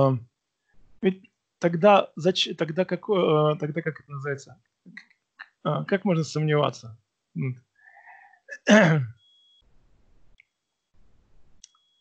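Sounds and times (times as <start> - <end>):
person sneezing: 8.5 - 9.1.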